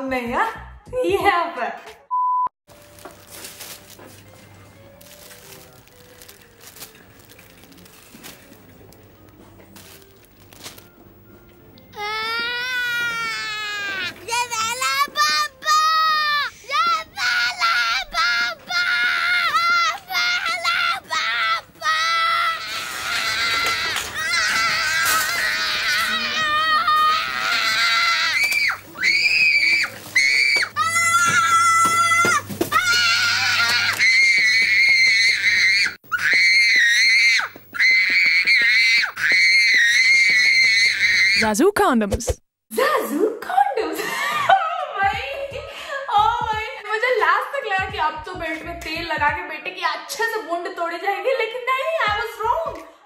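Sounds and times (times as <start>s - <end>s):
boy yelling: 12.0s - 22.7s
boy screaming: 12.0s - 41.4s
breathing: 45.6s - 46.1s, 52.8s - 53.0s.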